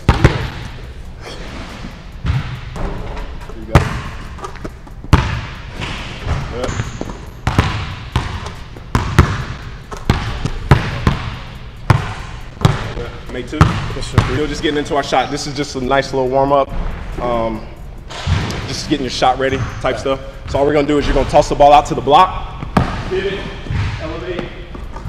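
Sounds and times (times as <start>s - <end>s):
basketballs bouncing on hardwood floor: 0.0s - 0.8s, 2.2s - 3.0s, 3.7s - 14.8s, 22.5s - 25.0s.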